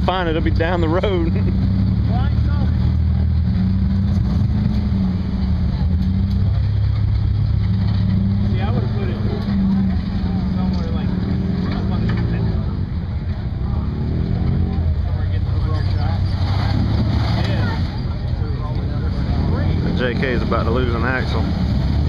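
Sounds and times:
buggy engine revving: 0.0s - 22.0s.

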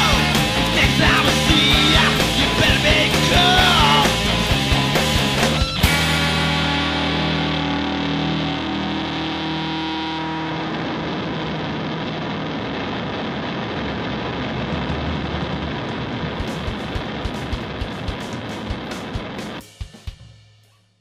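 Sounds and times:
distorted guitar noise: 0.0s - 20.4s
loose drum hits: 14.6s - 20.2s.

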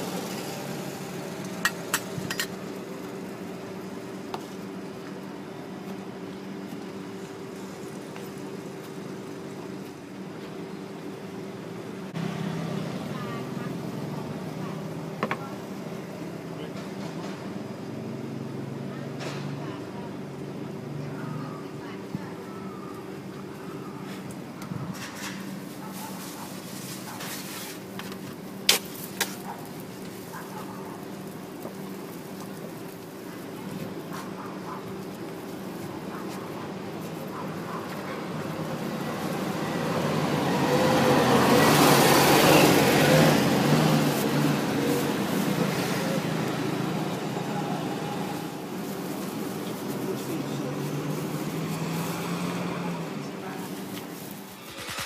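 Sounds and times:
vehicle driving past: 12.1s - 15.0s, 38.6s - 48.5s, 50.6s - 53.3s
engine idling: 54.5s - 55.0s.

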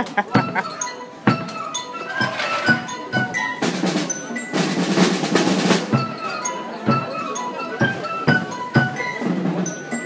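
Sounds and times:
marching band playing: 0.1s - 10.0s.

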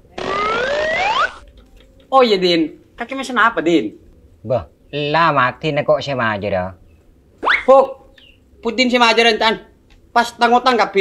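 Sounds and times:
rising whistle-like glide: 0.2s - 1.4s.

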